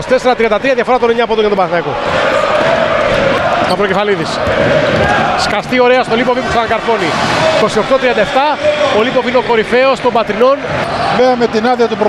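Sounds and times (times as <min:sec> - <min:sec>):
male sports commentator speaking: 0:00.0 - 0:02.0, 0:03.7 - 0:04.4, 0:05.4 - 0:12.0
arena crowd noise: 0:00.0 - 0:12.0.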